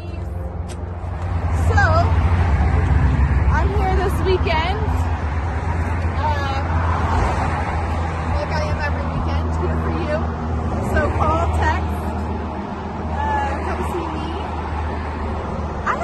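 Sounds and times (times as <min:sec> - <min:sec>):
road traffic rumble: 0:00.0 - 0:16.0
vehicles passing: 0:00.0 - 0:16.0.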